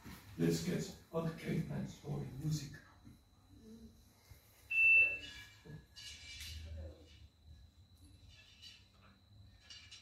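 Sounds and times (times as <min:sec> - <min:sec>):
high-pitched electronic beep: 0:04.7 - 0:05.5.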